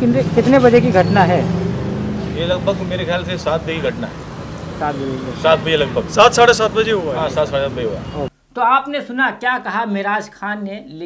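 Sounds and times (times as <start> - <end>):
vehicle engine hum: 0.0 - 8.3
man talking: 2.4 - 4.2, 5.0 - 11.0.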